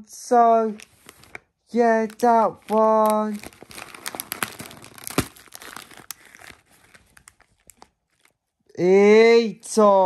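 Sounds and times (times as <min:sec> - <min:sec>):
crisp packet crinkling: 0:00.7 - 0:08.5
crisp packet bursting pop: 0:02.0 - 0:08.3.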